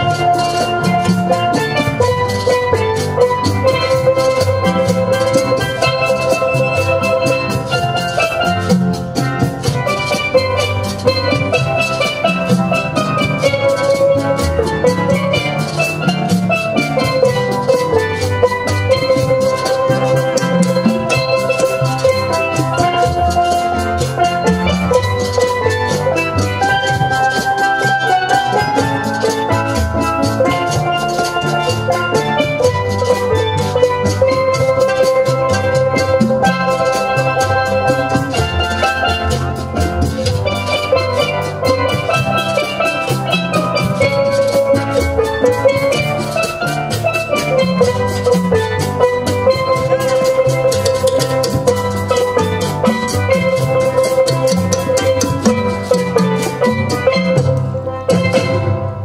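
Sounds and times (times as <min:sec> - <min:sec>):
steady drum accompaniment: 0:00.0 - 0:59.0
steel pans playing melody: 0:00.0 - 0:59.0.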